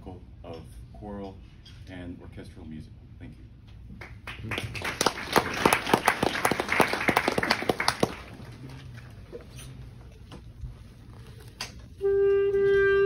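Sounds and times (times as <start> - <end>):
audience applauding: 4.0 - 9.0.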